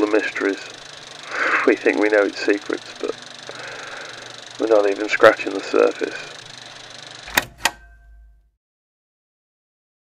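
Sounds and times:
tape recorder button clicks: 7.3s - 8.2s.

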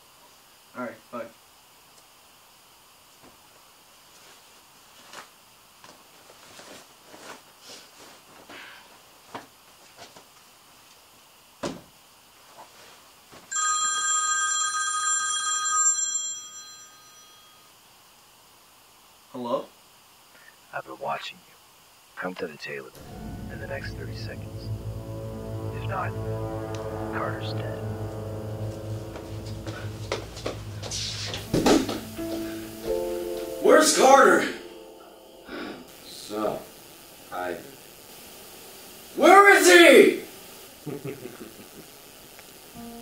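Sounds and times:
phone ringing: 13.5s - 17.6s
low drone: 22.9s - 37.4s
held musical note: 23.0s - 36.3s, 42.8s - 43.0s
loud thump: 30.9s - 32.1s.

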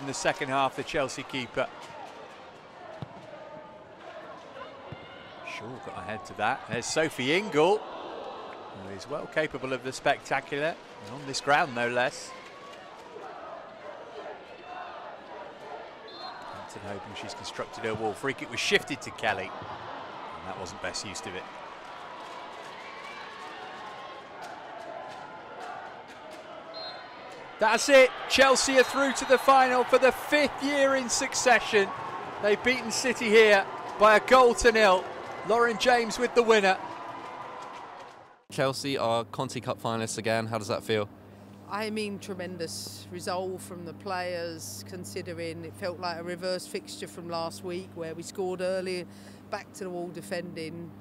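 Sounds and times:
stadium noise: 0.0s - 39.6s
faint crowd and player voices: 0.0s - 49.0s
ball kicked with a thud: 3.0s - 3.2s.

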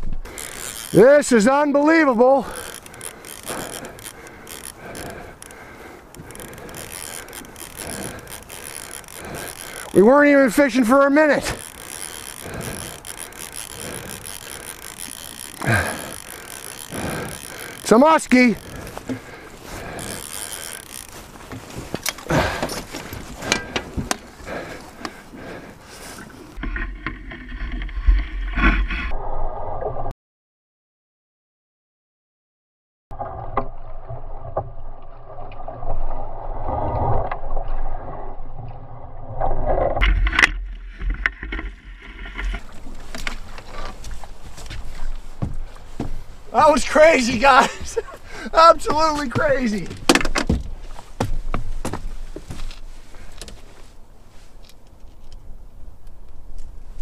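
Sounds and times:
fishing reel whirring and clicking: 0.3s - 1.4s, 2.3s - 21.4s.

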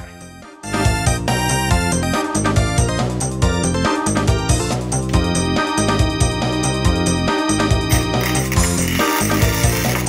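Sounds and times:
welding arc crackling: 8.1s - 10.0s.

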